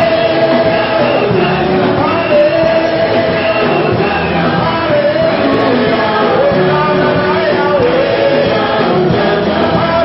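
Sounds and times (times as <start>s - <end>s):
church choir singing gospel: 0.0s - 10.0s.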